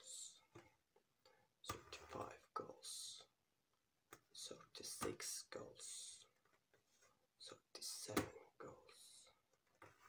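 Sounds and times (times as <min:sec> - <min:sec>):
close whispering: 0:01.7 - 0:03.3, 0:04.4 - 0:06.3, 0:07.4 - 0:09.4.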